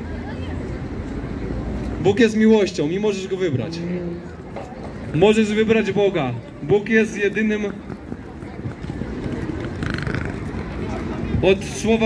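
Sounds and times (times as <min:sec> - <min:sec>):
faint voices of passers-by: 0:00.0 - 0:12.0.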